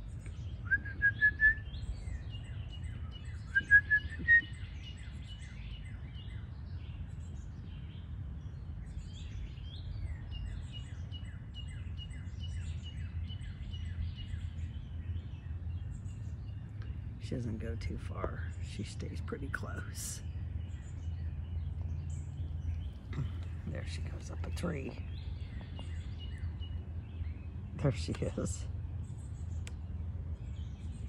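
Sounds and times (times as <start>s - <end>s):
birds chirping: 0.0s - 31.0s
steady low rumble: 0.0s - 31.0s
rising whistled bird notes: 0.6s - 1.8s, 3.4s - 4.8s.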